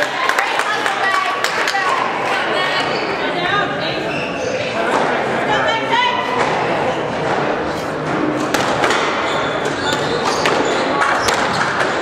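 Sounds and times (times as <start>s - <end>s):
spectators talking: 0.0s - 12.0s
squash ball smacked by racquets: 8.0s - 12.0s.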